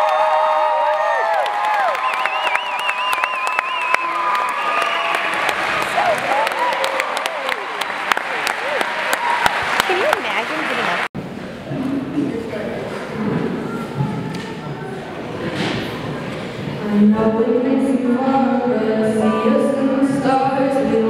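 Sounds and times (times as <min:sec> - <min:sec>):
audience applauding and cheering: 0:00.0 - 0:11.1.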